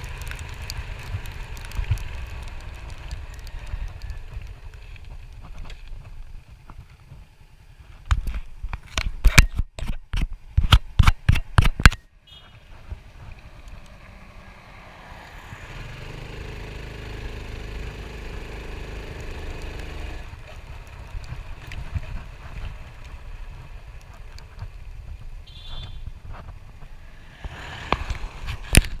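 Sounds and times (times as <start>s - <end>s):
motorcycle engine running: 0.0s - 8.4s, 15.5s - 29.0s.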